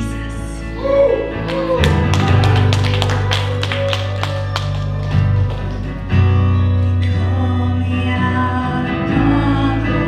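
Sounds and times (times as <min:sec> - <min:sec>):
bass notes: 0:00.0 - 0:10.0
keyboard notes: 0:00.0 - 0:10.0.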